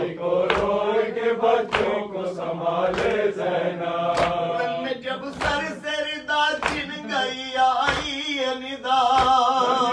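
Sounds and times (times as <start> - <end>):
man chanting: 4.5 - 9.9.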